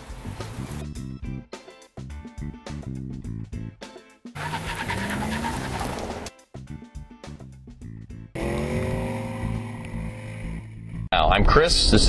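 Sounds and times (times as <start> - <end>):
vehicle engine accelerating: 4.4 - 6.3, 8.4 - 11.1.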